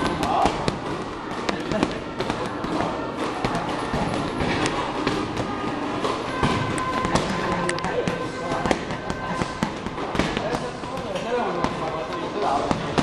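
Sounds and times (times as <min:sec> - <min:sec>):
punches and kicks smacking bags: 0:00.0 - 0:13.0
voices: 0:00.0 - 0:13.0.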